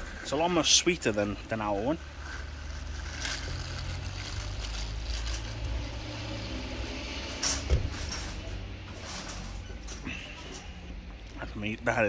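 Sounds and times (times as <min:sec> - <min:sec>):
low rumble of road traffic: 0:00.0 - 0:12.0.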